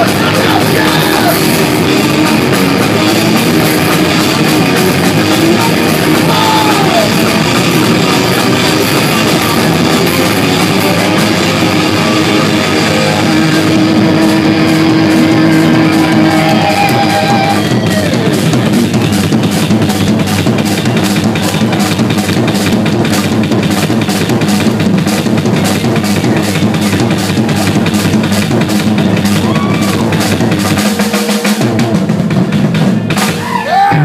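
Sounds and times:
distorted electric guitars droning: 0.0s - 34.0s
drums: 0.0s - 34.0s
live band playing loudly: 0.0s - 34.0s.

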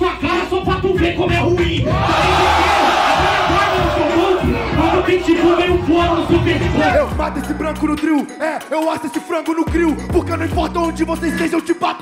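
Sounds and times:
hip-hop beat: 0.0s - 12.0s
crowd roaring and cheering: 1.8s - 7.2s.

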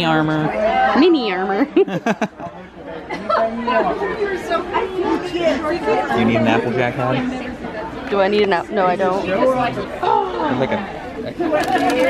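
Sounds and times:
hubbub of overlapping conversation: 0.0s - 12.0s.

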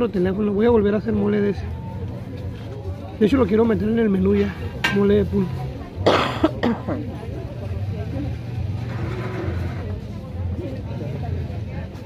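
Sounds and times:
faint voices: 0.0s - 12.0s
man coughing: 6.0s - 7.0s.

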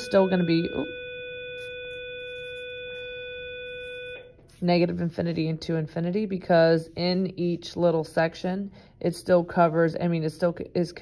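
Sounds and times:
steady electronic tone: 0.0s - 4.6s.

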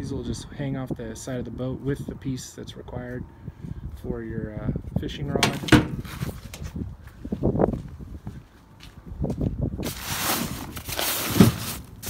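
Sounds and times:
rustling and scuffing: 5.5s - 12.0s.

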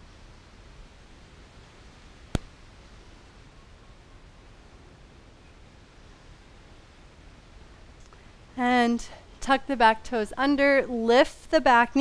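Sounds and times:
low background hiss: 0.0s - 12.0s.

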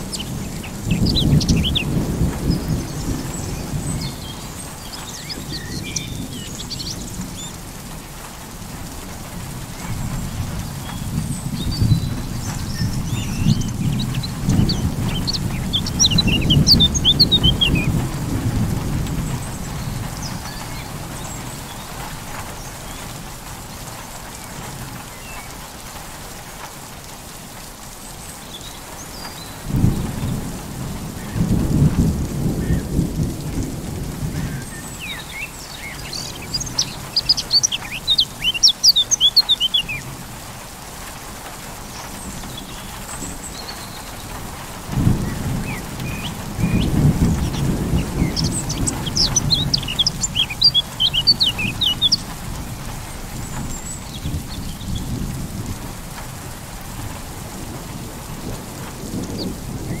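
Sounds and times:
steady rain: 0.0s - 60.0s
high bird chirping: 0.1s - 2.0s, 12.8s - 17.9s, 35.0s - 40.0s, 45.3s - 52.3s
thunder rolling: 44.2s - 60.0s.

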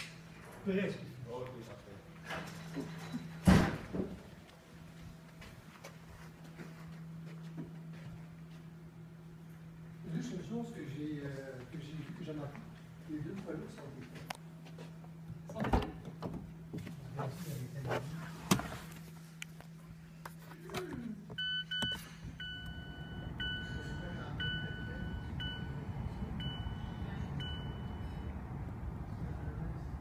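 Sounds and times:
car warning chime: 21.4s - 28.5s.

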